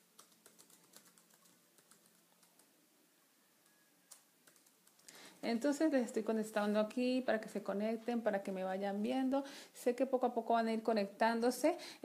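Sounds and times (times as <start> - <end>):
computer keyboard typing: 0.0 - 2.8, 3.6 - 5.2.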